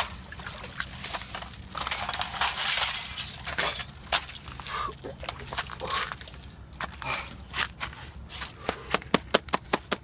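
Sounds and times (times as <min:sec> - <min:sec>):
ice crunching and crackling: 0:00.0 - 0:08.6
ice shards clinking: 0:00.9 - 0:04.7.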